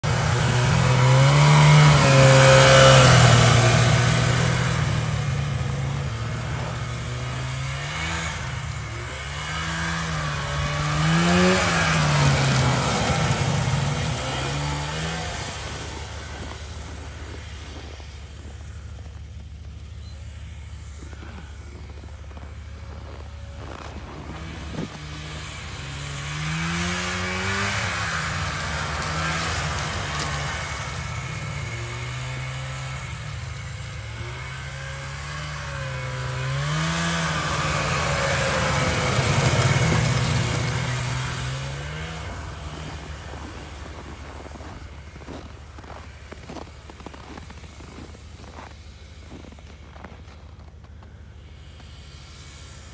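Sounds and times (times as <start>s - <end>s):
snowmobile engine revving: 0.0s - 52.9s.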